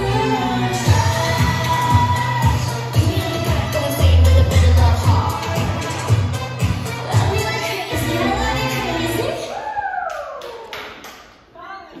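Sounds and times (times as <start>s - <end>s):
pop music: 0.0s - 9.7s.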